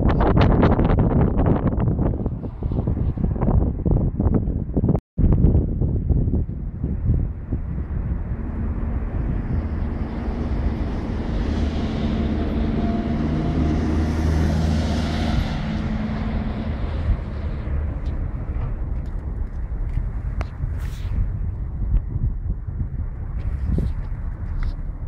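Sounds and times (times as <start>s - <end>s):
passing vehicle engine rumble: 0.0s - 25.0s.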